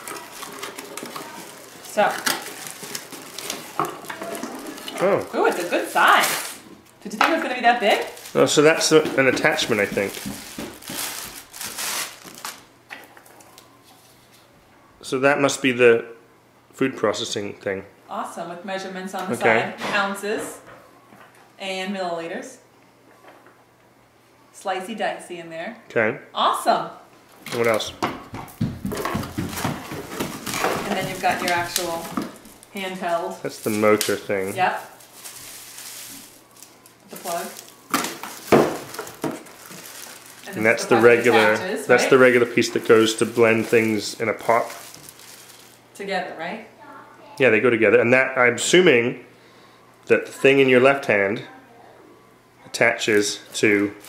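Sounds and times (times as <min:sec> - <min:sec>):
plastic packaging crinkling: 0:00.0 - 0:13.8, 0:28.9 - 0:46.0.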